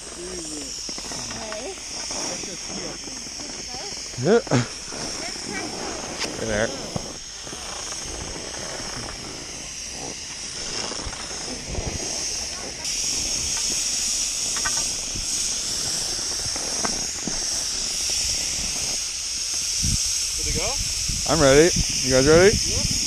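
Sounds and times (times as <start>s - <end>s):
snowmaking guns hissing: 0.0s - 23.0s.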